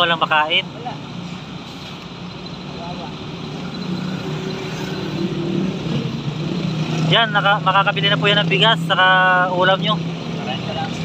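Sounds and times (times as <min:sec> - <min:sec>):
truck engine running: 0:00.0 - 0:11.0.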